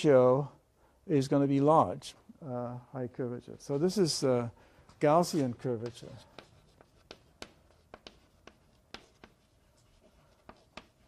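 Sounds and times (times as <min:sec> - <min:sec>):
chalk tapping and scratching: 0:04.9 - 0:11.0.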